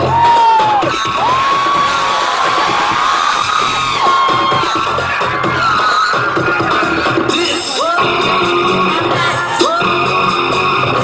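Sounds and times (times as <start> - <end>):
crowd cheering and whooping: 0.0 - 7.1
loud amplified music: 0.0 - 11.0.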